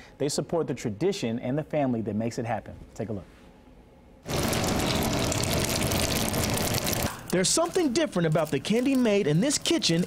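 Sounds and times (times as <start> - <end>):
loud rushing kitchen noise: 4.2 - 7.2.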